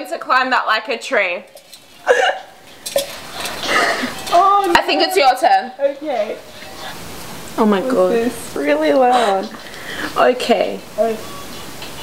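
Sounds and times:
women laughing: 2.0s - 5.0s, 8.9s - 9.7s.

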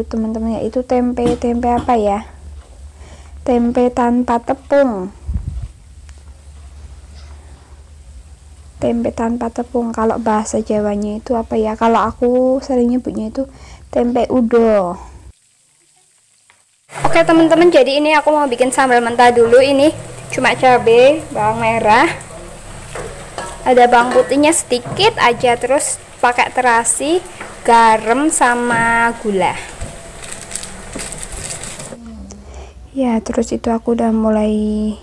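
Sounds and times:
tempe sizzling in oil: 0.4s - 32.0s
handling food in stone mortar: 29.6s - 32.0s
low humming voice: 32.0s - 32.7s.

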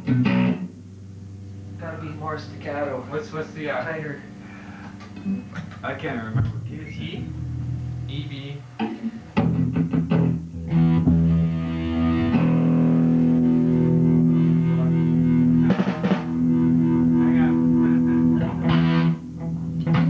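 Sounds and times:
electric guitar strumming: 0.0s - 20.0s.

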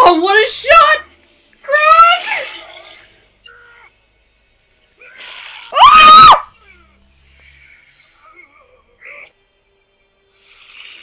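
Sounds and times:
woman screaming: 5.7s - 6.6s.

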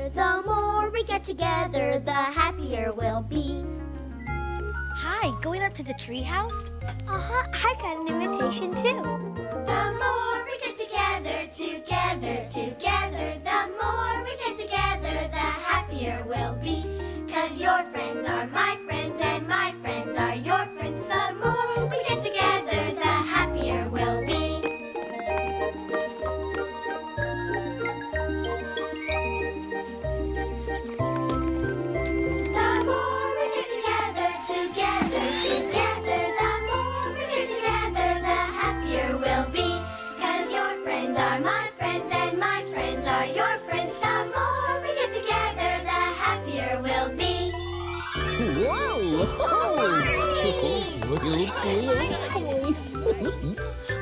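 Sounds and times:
bright chiming bell-like notes: 28.1s - 30.0s, 47.5s - 52.2s
magical twinkling sparkle: 32.9s - 38.0s, 47.4s - 54.0s
character voice calling out: 48.3s - 52.5s.

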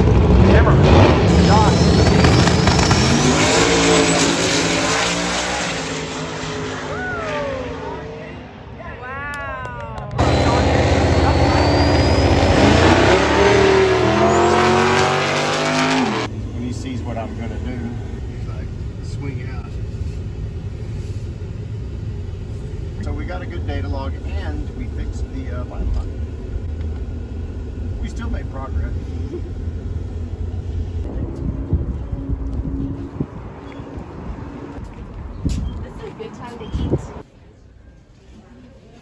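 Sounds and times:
race cars accelerating: 0.0s - 9.0s, 9.9s - 18.6s
truck rumbling from inside cab: 9.1s - 15.0s, 16.2s - 37.8s.

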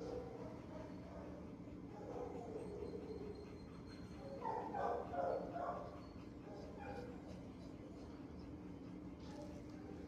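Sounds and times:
dog barking: 4.4s - 5.9s.

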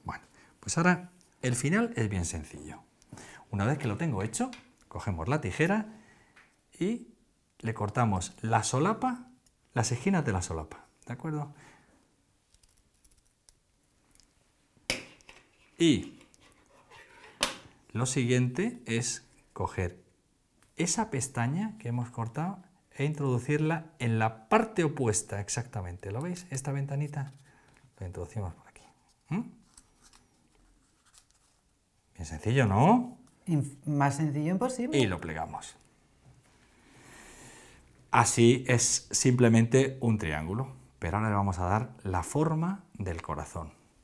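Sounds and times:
paper rustling: 29.0s - 31.7s.

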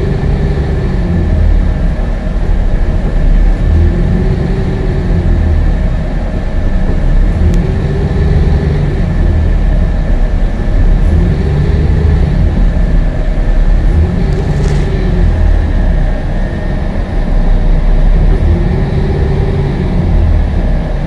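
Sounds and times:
bus engine and road rumble: 0.0s - 21.0s.

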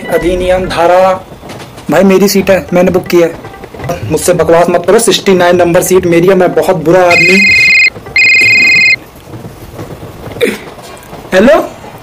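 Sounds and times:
mobile phone ringing: 7.1s - 9.0s.

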